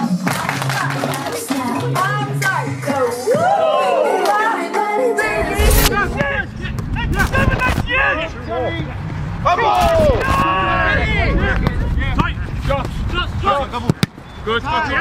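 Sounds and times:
low rumble: 0:05.2 - 0:09.5.

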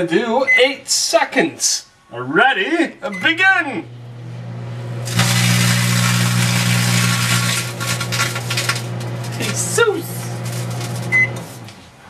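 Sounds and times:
microwave oven hum: 0:03.1 - 0:11.8.

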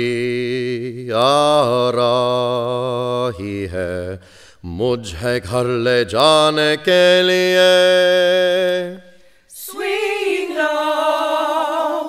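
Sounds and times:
chant-like singing with vibrato: 0:00.0 - 0:12.0.

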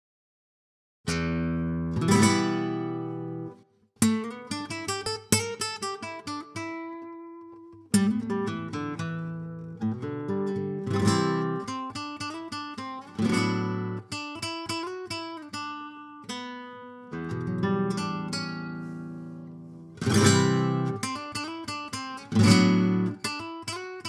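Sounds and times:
acoustic guitar chords: 0:01.1 - 0:24.0.

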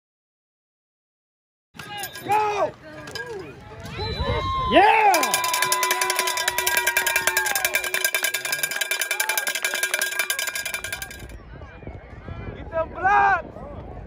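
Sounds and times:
crowd cheering and shouting: 0:01.8 - 0:10.7
fast rattling clatter: 0:05.1 - 0:11.4.

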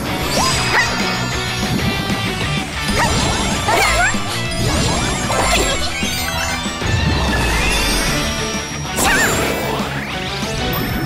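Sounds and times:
action scene music: 0:00.0 - 0:11.0.

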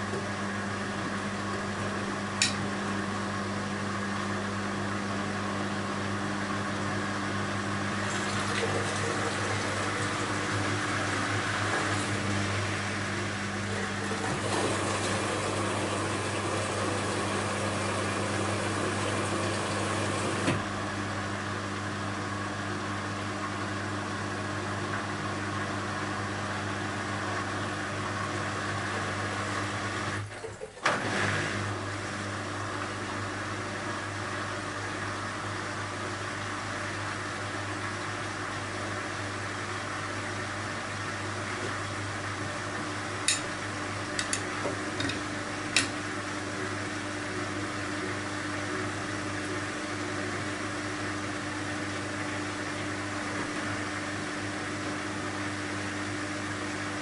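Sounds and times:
washing machine motor hum: 0:00.0 - 0:57.0.

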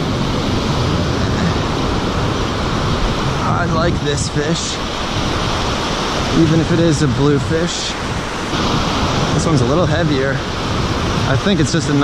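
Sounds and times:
ocean surf breaking: 0:00.0 - 0:12.0.

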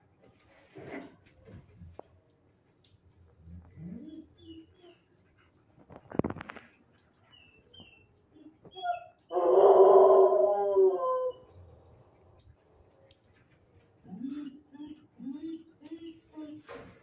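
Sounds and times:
dog whining howl: 0:08.4 - 0:11.5.

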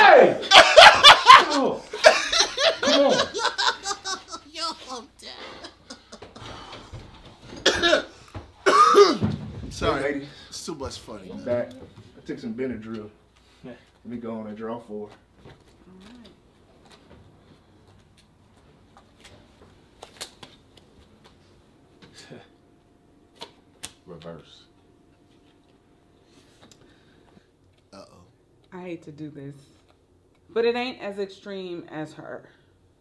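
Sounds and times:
person coughing: 0:07.5 - 0:09.3
playing cards snapping: 0:20.0 - 0:20.8.

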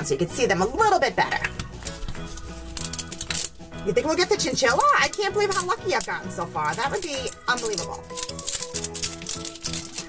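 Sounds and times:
background music with held notes: 0:00.0 - 0:10.0
foil wrapper crinkling: 0:01.6 - 0:10.0.

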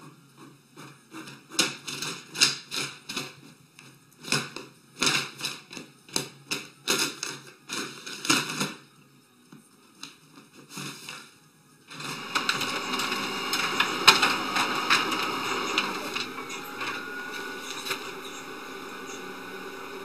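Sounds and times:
printer mechanical clatter: 0:11.9 - 0:20.0
printer whirr: 0:11.9 - 0:20.0.

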